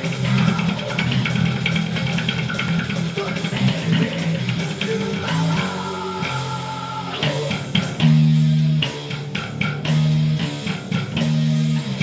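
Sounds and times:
distorted guitars: 0:00.0 - 0:12.0
drums: 0:00.0 - 0:12.0
fingerstyle electric bass riff: 0:00.0 - 0:12.0.

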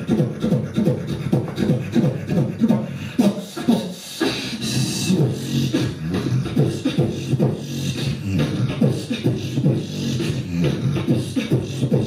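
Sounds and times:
beatboxing into a microphone: 0:00.0 - 0:12.0.

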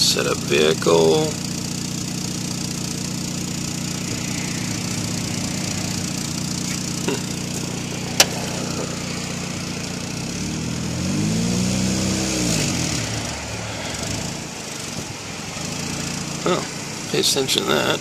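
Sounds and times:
car engine idling and revving: 0:00.0 - 0:18.0
sharp click: 0:08.2 - 0:08.4.

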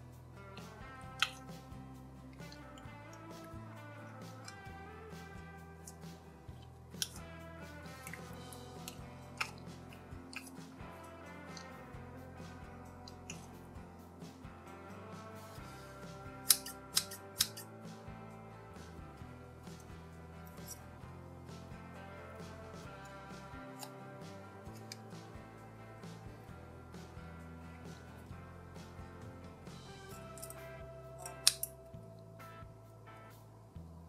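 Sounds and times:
background music: 0:00.0 - 0:34.0
scissors snipping: 0:06.9 - 0:07.2, 0:16.4 - 0:17.7
scissors snipping rubber toy: 0:06.9 - 0:07.2, 0:16.4 - 0:17.7, 0:30.2 - 0:31.8.

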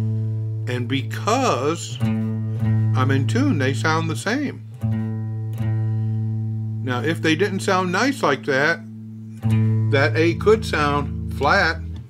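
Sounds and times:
electric guitar low note ringing: 0:04.7 - 0:12.0.

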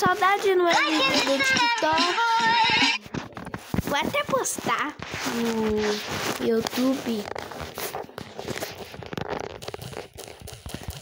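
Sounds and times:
phone being handled: 0:03.0 - 0:11.0.

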